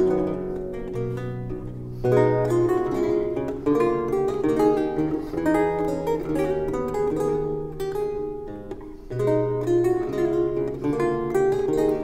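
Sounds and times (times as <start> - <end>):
solo lute playing: 0.0 - 12.0.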